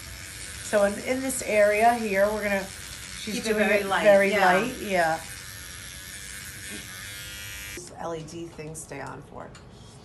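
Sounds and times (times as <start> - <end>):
electric pen buzzing: 0.0 - 7.8.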